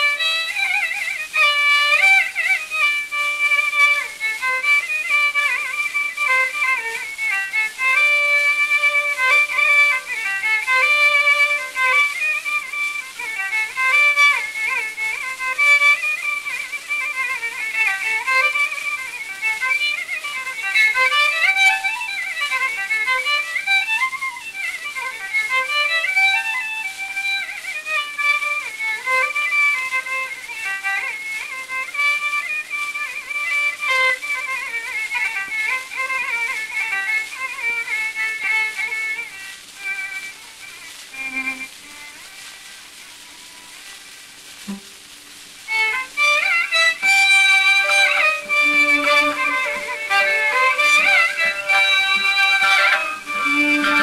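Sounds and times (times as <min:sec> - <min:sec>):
record surface hiss: 0:00.0 - 0:54.0
solo violin with sliding ornaments: 0:00.0 - 0:54.0.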